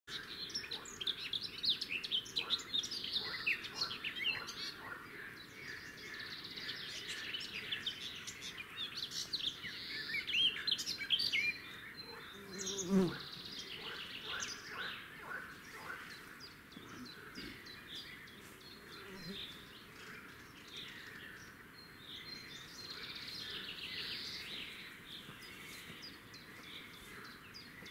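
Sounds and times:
small birds chirping: 0.1s - 27.9s.

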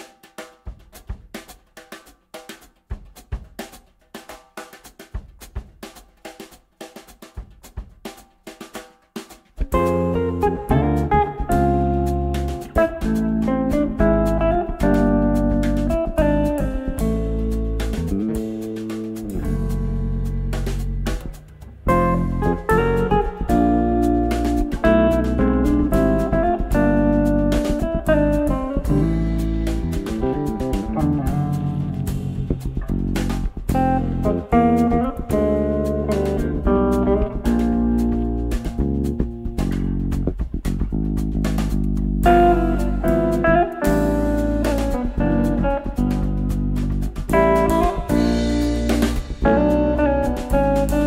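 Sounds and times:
drum kit: 0.0s - 51.0s
electric bass: 9.6s - 51.0s
electric guitar melody: 9.6s - 51.0s.

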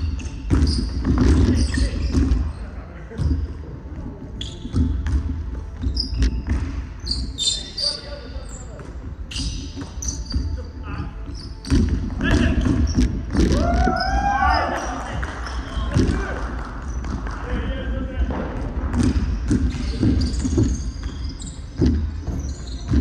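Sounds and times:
basketball bouncing on wooden floor: 0.0s - 2.5s, 4.4s - 6.8s, 11.3s - 14.1s, 18.3s - 23.0s
shoe squeaks: 0.0s - 3.6s, 4.3s - 17.5s, 19.0s - 23.0s.

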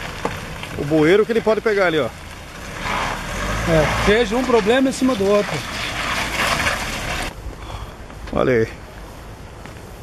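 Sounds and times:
pickup truck running: 0.0s - 7.3s.

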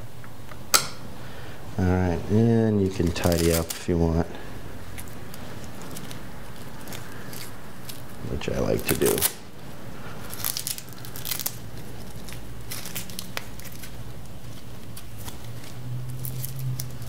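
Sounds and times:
cables rustling: 2.6s - 17.0s
hook-and-loop strap ripping: 3.0s - 3.8s, 8.8s - 9.4s, 10.3s - 17.0s.

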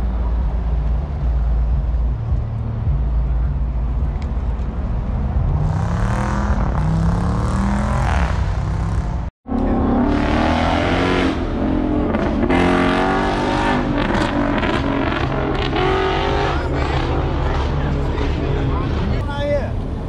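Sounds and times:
car engines revving: 0.0s - 20.0s.

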